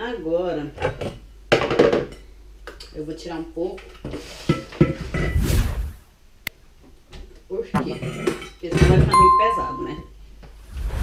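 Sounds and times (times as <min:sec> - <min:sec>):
bell-like ding: 0:09.2 - 0:10.1.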